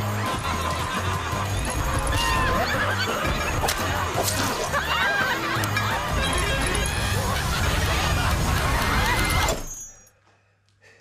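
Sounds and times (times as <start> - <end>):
loud chaotic din of voices: 0.0 - 9.7.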